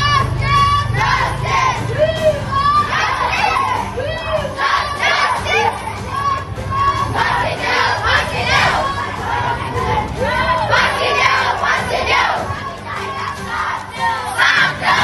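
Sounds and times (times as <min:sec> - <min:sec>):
young voices chanting slogans: 0:00.0 - 0:15.0.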